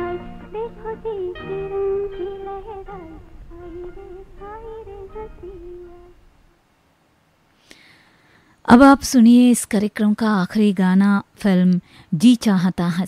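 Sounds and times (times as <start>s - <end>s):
film song melody: 0.0s - 6.3s.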